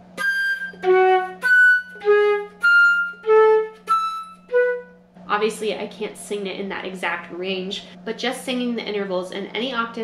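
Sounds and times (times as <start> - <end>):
flute playing: 0.1 - 5.0.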